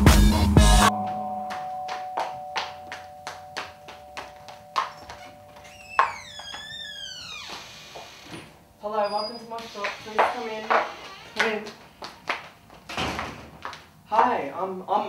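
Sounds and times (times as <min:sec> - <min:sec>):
door hinge creaking: 0:04.9 - 0:11.5.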